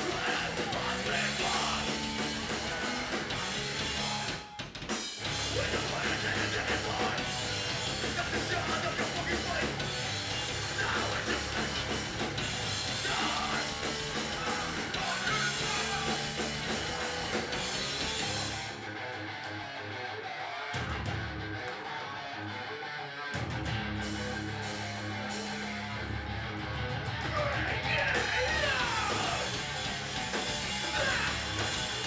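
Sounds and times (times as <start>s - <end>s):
punk band playing loud: 0.0s - 22.7s, 23.3s - 32.0s.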